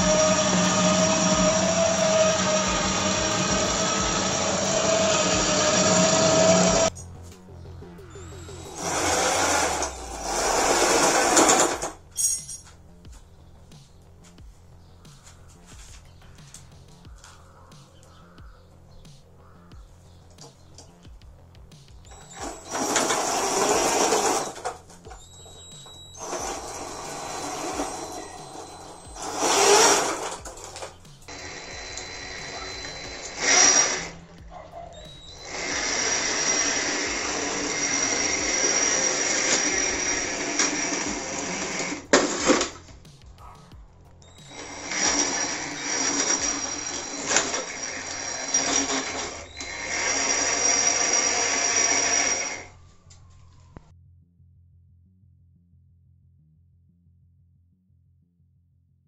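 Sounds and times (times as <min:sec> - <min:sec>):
electric gear motors whining: 0:00.0 - 0:12.4, 0:22.0 - 0:43.0, 0:44.1 - 0:53.8.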